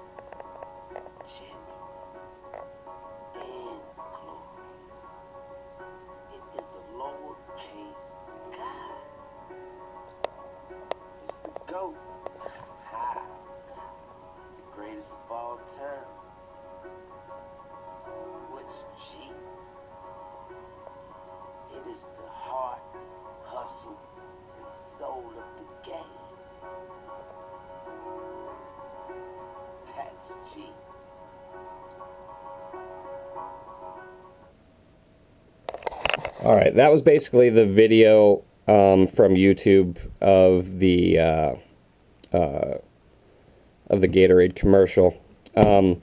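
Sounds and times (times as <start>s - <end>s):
commercial music: 0.0s - 34.6s
voice over music: 0.8s - 2.3s, 3.1s - 5.0s, 5.8s - 10.0s, 10.6s - 34.2s.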